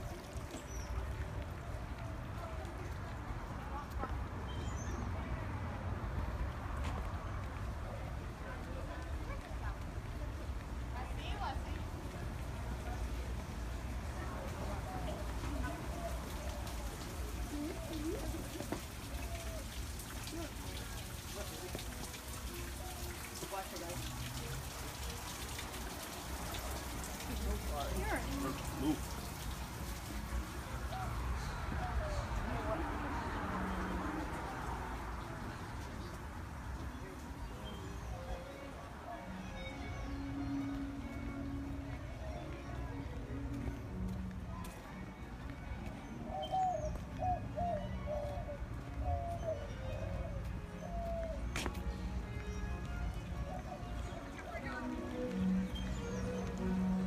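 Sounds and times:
faint voices: 0.0s - 57.0s
water splashing into pond: 15.3s - 37.6s
dove cooing: 17.3s - 20.4s.

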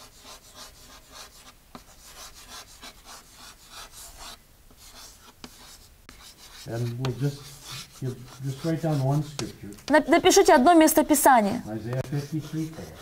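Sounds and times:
chalk scratching on blackboard: 0.0s - 13.0s
chalk tapping on board: 0.0s - 13.0s.

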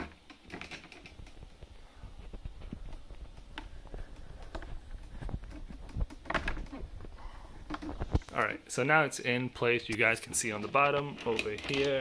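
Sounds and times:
plastic and metal clicks and knocks: 0.0s - 1.6s, 2.6s - 7.0s, 7.6s - 8.3s, 9.9s - 12.0s.

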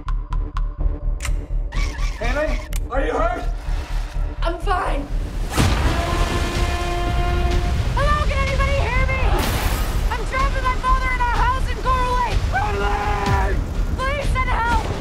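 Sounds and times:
low pulsing music beat: 0.0s - 9.3s
spoken lines: 4.3s - 5.2s, 7.9s - 9.4s, 10.1s - 15.0s
deep hit: 5.4s - 10.2s.

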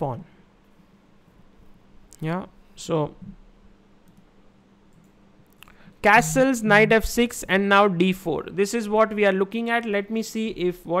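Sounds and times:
man's voice: 6.0s - 7.6s.

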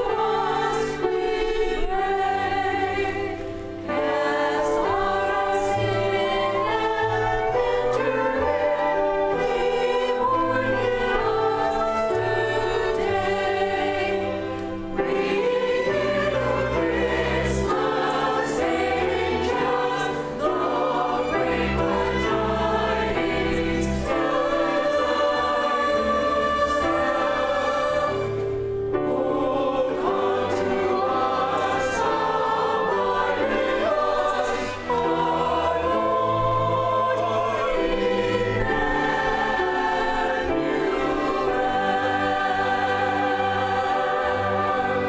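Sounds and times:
choir singing: 0.0s - 45.0s
string ensemble playing: 0.0s - 45.0s.

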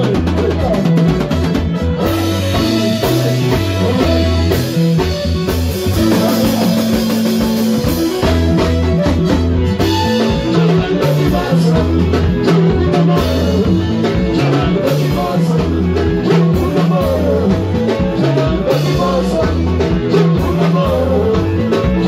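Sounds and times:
live dance band playing: 0.0s - 22.0s
person singing into a microphone: 1.8s - 5.2s, 5.8s - 8.7s, 9.8s - 22.0s.

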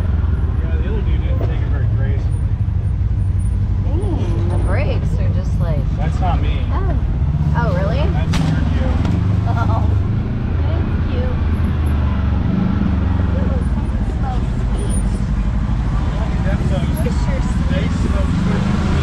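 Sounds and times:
engine droning: 0.0s - 19.0s.

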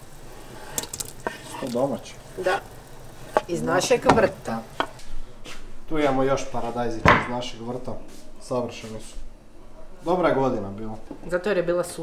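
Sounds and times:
wooden spoon scraping cutting board: 0.4s - 1.8s, 3.2s - 5.0s.

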